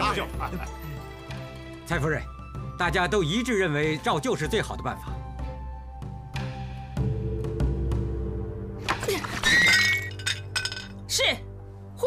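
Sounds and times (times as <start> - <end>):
bowl clinking: 8.9 - 11.0.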